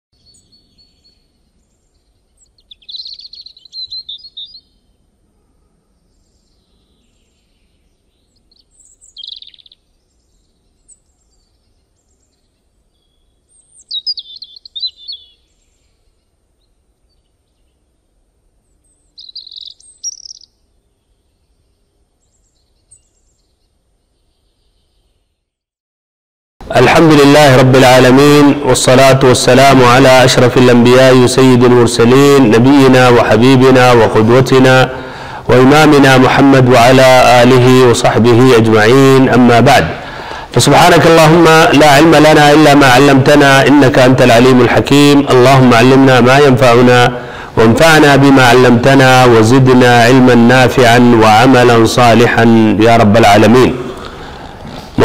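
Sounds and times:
bird chirping: 0:00.2 - 0:25.6, 0:27.0 - 0:50.2.

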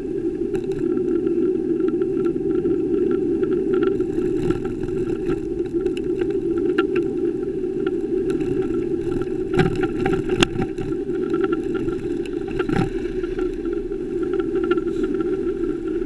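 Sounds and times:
bicycle road noise: 0:00.0 - 0:16.0.

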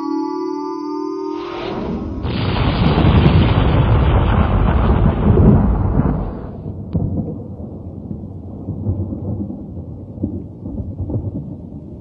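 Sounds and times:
low rumble: 0:01.4 - 0:09.6
deep rumbling boom: 0:01.5 - 0:11.8.

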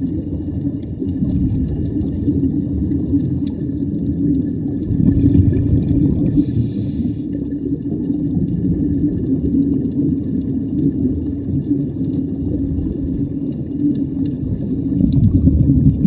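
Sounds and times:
underwater water rumble: 0:00.0 - 0:16.0
faint hiss: 0:06.2 - 0:07.6.

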